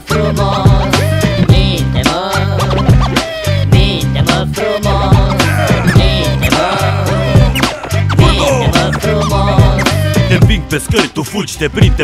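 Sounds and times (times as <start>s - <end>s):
hip hop beat: 0.0s - 12.0s
turntable scratching: 0.2s - 3.2s, 4.3s - 11.1s.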